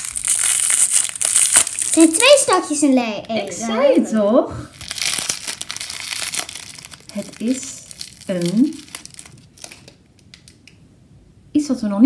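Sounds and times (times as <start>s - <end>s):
plastic wrapper crinkling and tearing: 0.0s - 3.5s, 4.7s - 10.8s.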